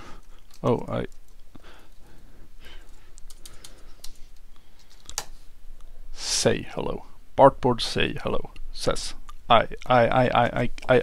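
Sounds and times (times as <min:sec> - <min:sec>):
typing on computer keyboard: 0:02.8 - 0:05.3.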